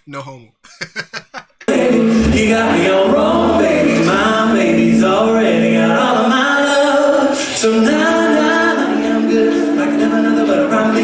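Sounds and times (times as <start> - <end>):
man laughing: 0.6 - 1.7
a cappella close-harmony singing: 1.7 - 11.0
very low bass voice: 2.1 - 4.6.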